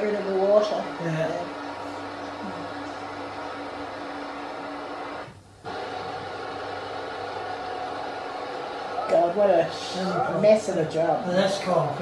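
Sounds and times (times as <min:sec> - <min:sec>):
steady machine hum: 0:00.0 - 0:12.0.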